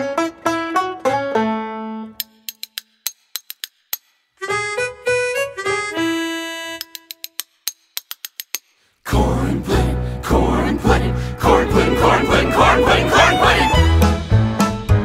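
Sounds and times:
banjo picking: 0:00.0 - 0:02.2, 0:11.5 - 0:14.7
spoons clicking: 0:02.2 - 0:04.3, 0:06.8 - 0:08.8.

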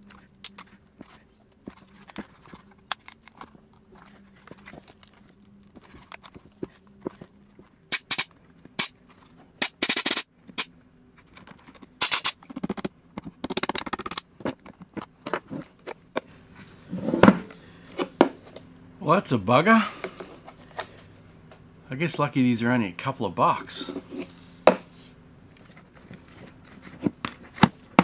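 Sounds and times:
compressed air blow gun hissing: 0:07.9 - 0:08.9.

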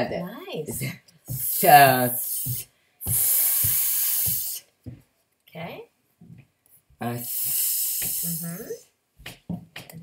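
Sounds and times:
person hissing an s sound: 0:01.4 - 0:04.7, 0:07.2 - 0:08.8.

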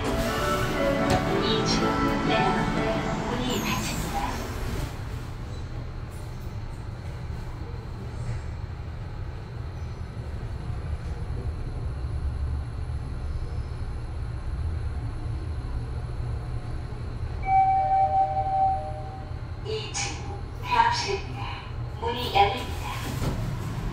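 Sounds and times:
elevator low rumble: 0:00.0 - 0:23.9
two-note arrival chime: 0:17.4 - 0:19.2.

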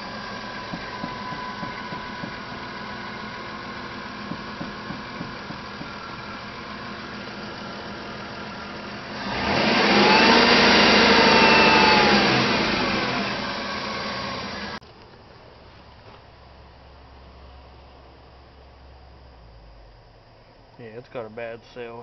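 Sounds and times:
car engine idling and revving: 0:00.0 - 0:14.8, 0:16.4 - 0:20.8.

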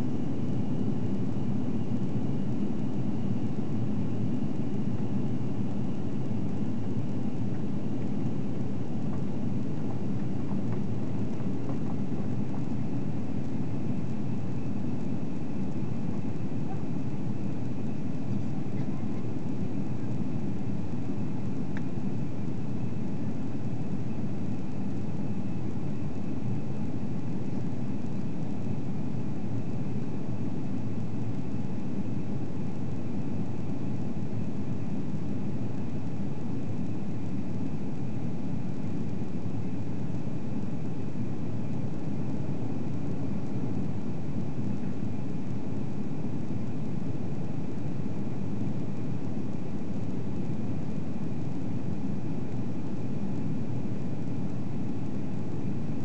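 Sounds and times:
airliner cabin engine roar: 0:00.0 - 0:29.2
faint high whine: 0:00.0 - 0:56.0.

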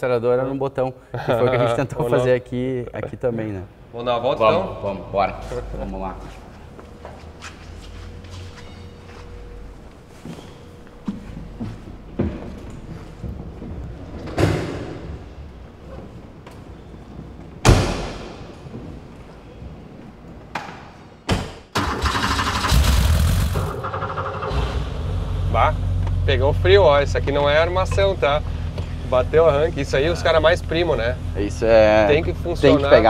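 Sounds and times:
car doors thumping shut: 0:17.6 - 0:18.4
car engine starting and running: 0:21.8 - 0:33.0.

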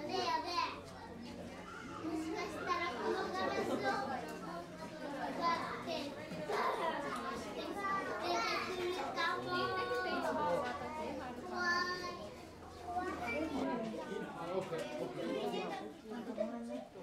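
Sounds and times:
children's voices: 0:00.0 - 0:17.0
people talking at once: 0:00.0 - 0:17.0.

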